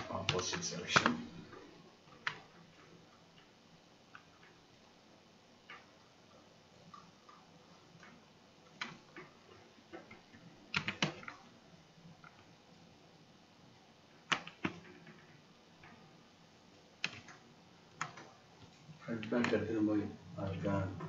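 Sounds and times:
computer mouse and keyboard clicks: 0:00.0 - 0:04.6, 0:05.6 - 0:06.1, 0:06.8 - 0:11.5, 0:12.2 - 0:12.5, 0:14.2 - 0:16.0, 0:17.0 - 0:19.7.

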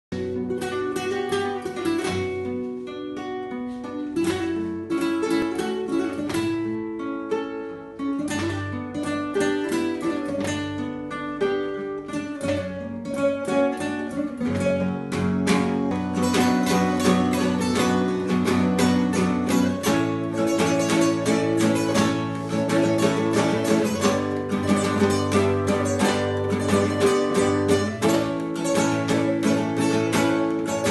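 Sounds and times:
slow plucked guitar music: 0:00.1 - 0:30.9.

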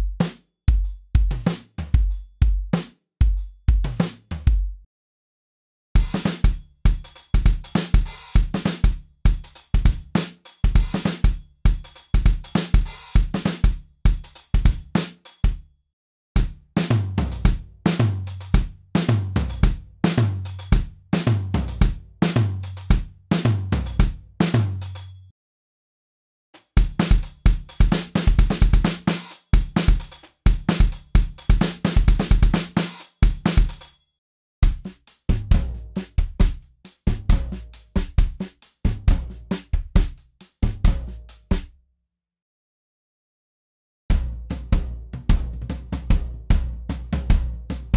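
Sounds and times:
acoustic drum kit loops: 0:00.0 - 0:04.7, 0:06.0 - 0:15.6, 0:16.4 - 0:25.2, 0:26.6 - 0:34.0, 0:34.6 - 0:41.6, 0:44.2 - 0:47.9.

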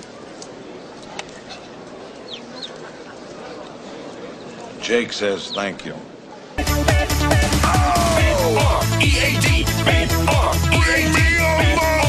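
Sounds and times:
background noise: 0:00.0 - 0:12.0.

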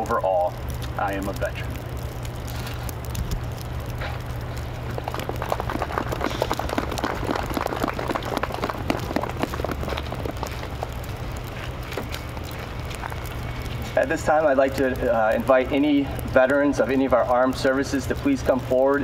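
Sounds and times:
low rumble: 0:00.0 - 0:18.2
small crowd applauding: 0:04.9 - 0:11.0.

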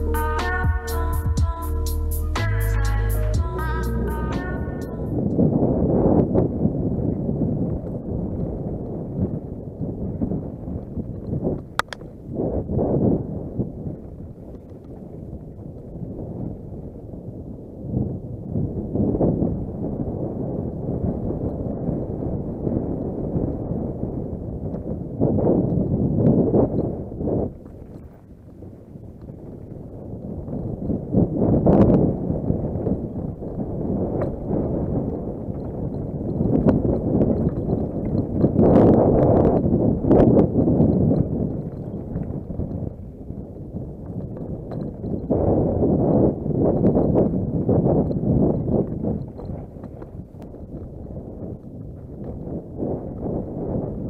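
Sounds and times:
sharp clacks: 0:11.6 - 0:12.1
bike rattling over rocky trail: 0:25.6 - 0:31.6, 0:32.3 - 0:53.8.

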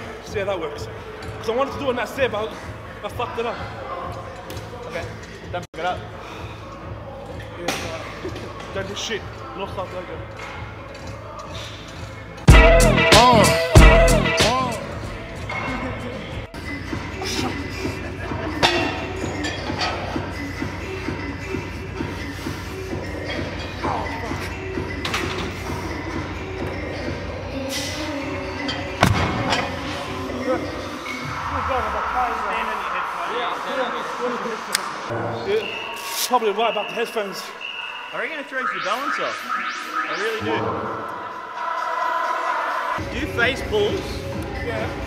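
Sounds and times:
faint indistinct voices: 0:00.0 - 0:12.5
background music: 0:00.0 - 0:45.0.

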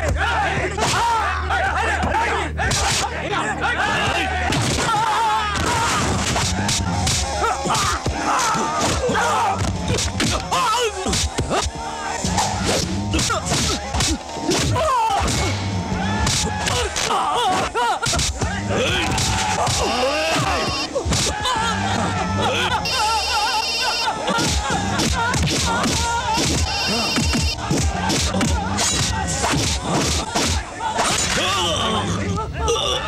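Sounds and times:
background music: 0:00.0 - 0:33.0
shouts and grunts: 0:00.0 - 0:33.0
action music: 0:18.3 - 0:21.4, 0:22.7 - 0:30.7
fight sound effect: 0:25.4 - 0:29.0.

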